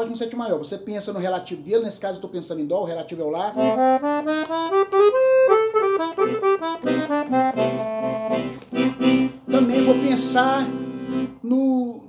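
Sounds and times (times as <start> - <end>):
accordion playing quick notes: 3.6 - 11.4.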